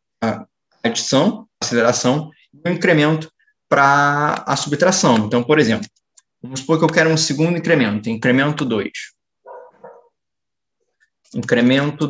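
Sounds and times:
dog barking faintly: 9.4s - 10.2s.

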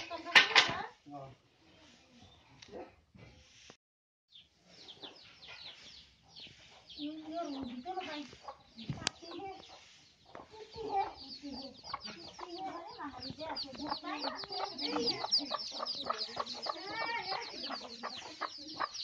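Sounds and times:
chicks peeping: 4.3s - 19.0s
hen clucking: 4.8s - 19.0s.

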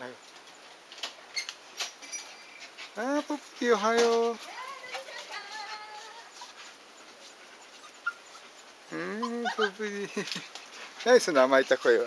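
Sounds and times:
dog panting: 4.4s - 12.0s
dog whimpering: 4.6s - 10.2s, 11.2s - 12.0s.

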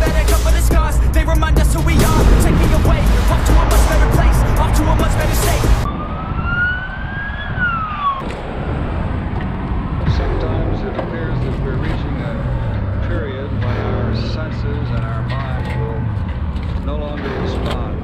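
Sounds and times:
music: 0.0s - 5.9s, 9.4s - 18.0s
road traffic rumble: 0.0s - 18.0s
siren wail: 2.4s - 11.5s.

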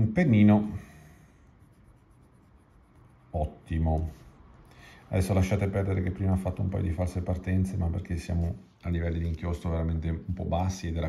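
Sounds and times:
pen nib scratching on paper: 1.4s - 3.6s.

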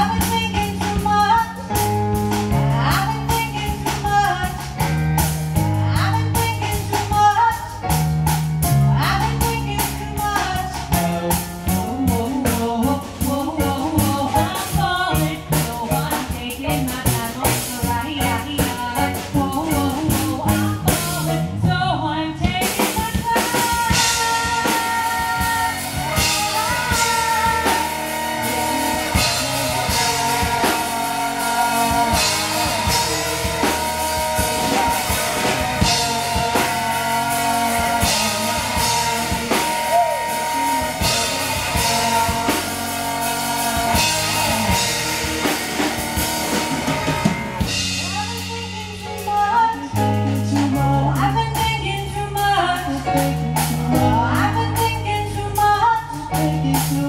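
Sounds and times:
bass guitar: 0.0s - 57.0s
drum kit: 0.0s - 57.0s
electric guitar: 0.0s - 57.0s
person singing: 0.0s - 57.0s.

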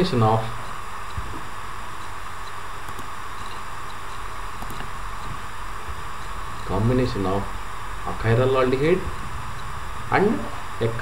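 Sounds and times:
steady background hiss: 0.0s - 11.0s
faint ticks: 2.0s - 5.4s.

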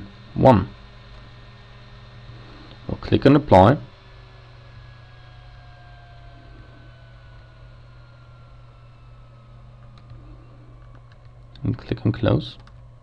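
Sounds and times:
low hum: 0.0s - 13.0s
thin tone sliding down: 0.0s - 13.0s.

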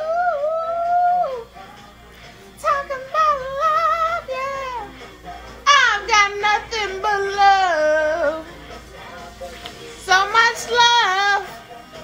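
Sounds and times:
slow r and b song from tv: 0.0s - 12.0s
woman singing along: 0.0s - 12.0s.

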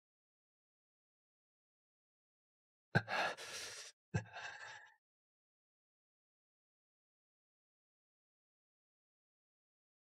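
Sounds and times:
man exhaling breathily: 3.0s - 4.8s.

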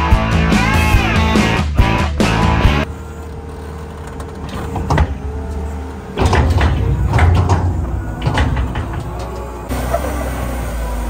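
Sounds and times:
loader diesel engine running: 0.0s - 11.0s.

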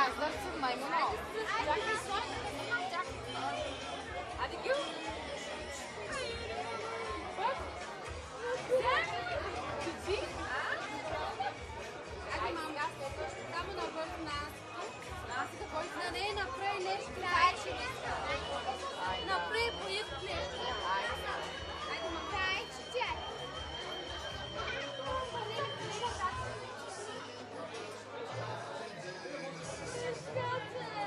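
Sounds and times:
chatter of children's voices: 0.0s - 31.0s
people talking at once: 0.0s - 31.0s.

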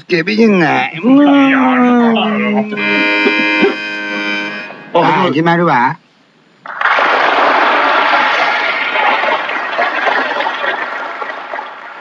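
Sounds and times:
audience applause: 6.8s - 12.0s.

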